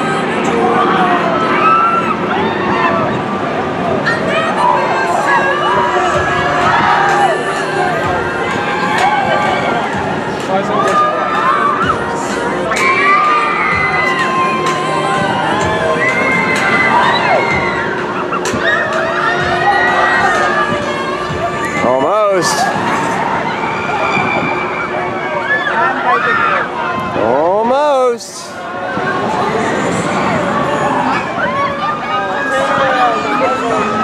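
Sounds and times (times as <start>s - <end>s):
crowd noise: 0.0s - 34.0s
riders screaming and shouting: 0.1s - 34.0s.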